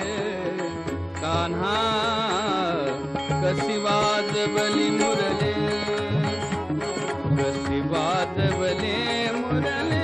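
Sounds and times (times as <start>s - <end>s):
sustained harmonium: 0.0s - 10.0s
violin melody with sliding notes: 0.0s - 10.0s.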